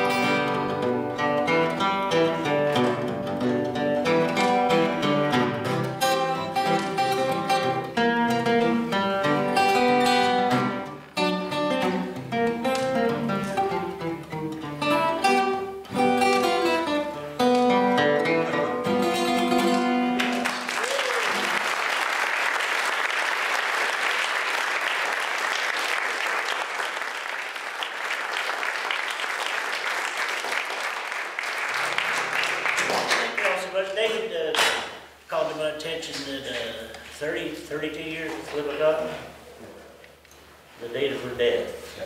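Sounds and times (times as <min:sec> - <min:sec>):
acoustic guitar blues: 0:00.0 - 0:20.6
audience applauding: 0:20.2 - 0:33.7.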